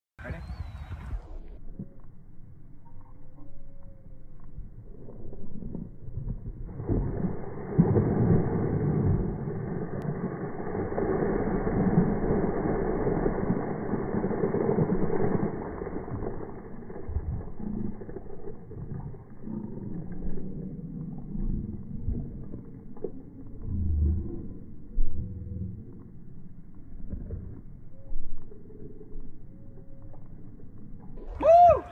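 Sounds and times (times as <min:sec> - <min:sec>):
water splashing on pavement: 0:05.2 - 0:20.7.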